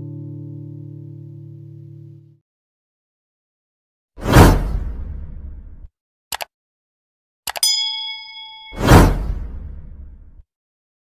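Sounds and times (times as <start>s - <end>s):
whoosh: 8.6s - 10.3s.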